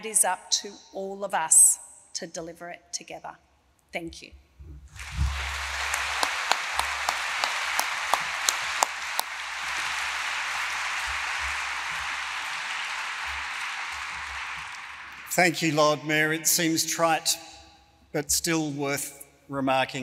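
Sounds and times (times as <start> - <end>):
audience applauding: 4.9 - 16.8
sharp single claps: 5.0 - 15.4.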